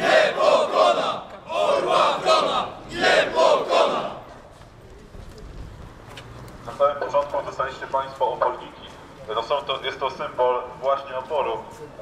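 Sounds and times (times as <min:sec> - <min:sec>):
marching crowd noise: 0:00.0 - 0:12.0.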